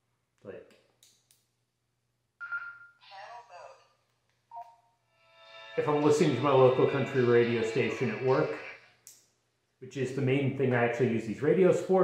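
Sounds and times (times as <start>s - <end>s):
radio beep: 2.4s - 3.0s.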